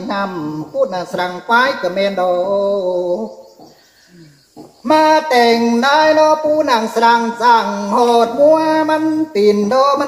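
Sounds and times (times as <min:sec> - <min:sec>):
man singing: 0:00.0 - 0:10.0.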